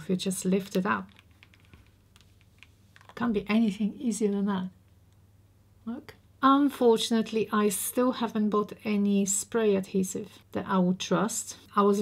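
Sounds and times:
glue peeling crackles: 0.7s - 3.2s.

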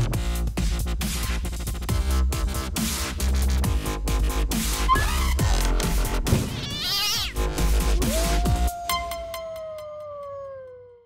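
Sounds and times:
wolf howl: 6.9s - 11.0s.

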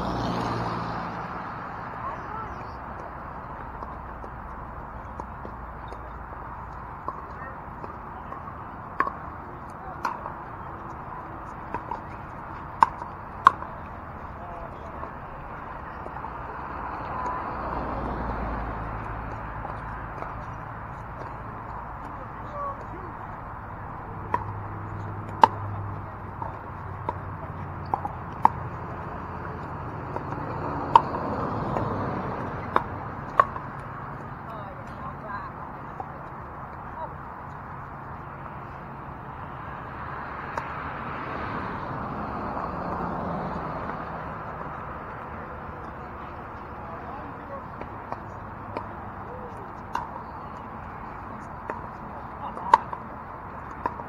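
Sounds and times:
murmur of voices: 5.4s - 40.4s, 42.3s - 54.0s
paddles hitting plastic ball: 7.0s - 13.8s, 24.2s - 34.2s.

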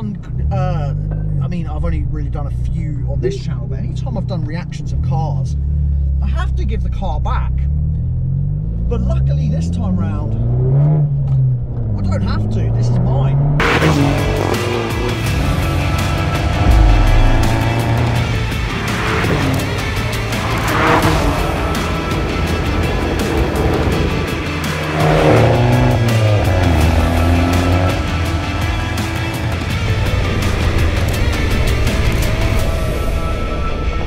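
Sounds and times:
car engine revving: 4.0s - 33.0s
music playing: 13.6s - 33.0s.

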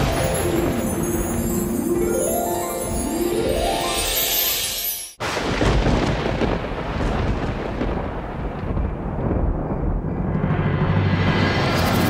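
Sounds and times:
thunder-like rumbling rush: 5.2s - 12.0s.

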